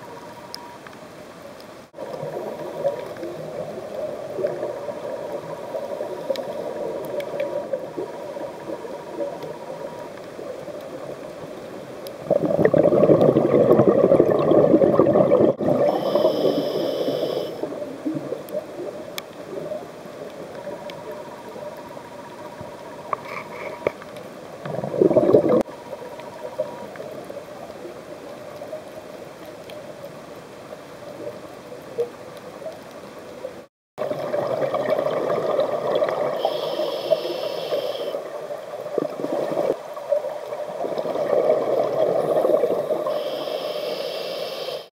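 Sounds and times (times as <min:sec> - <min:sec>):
underwater regulator bubbles: 0:12.2 - 0:18.8, 0:24.6 - 0:25.7, 0:34.0 - 0:38.2.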